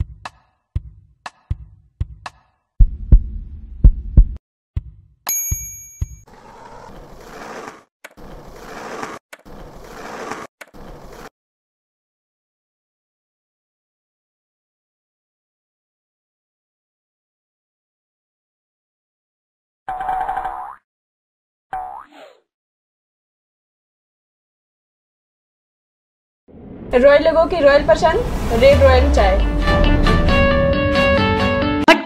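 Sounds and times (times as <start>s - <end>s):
heartbeat thumps: 0.8s - 5.0s.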